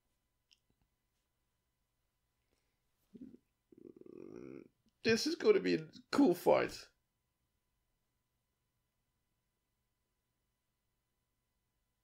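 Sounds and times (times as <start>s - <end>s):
man grunting: 3.2s - 4.7s.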